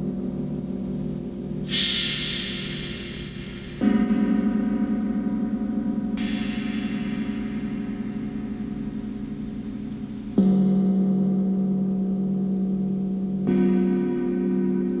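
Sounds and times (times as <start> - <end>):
deep gong strikes ringing: 1.7 - 15.0.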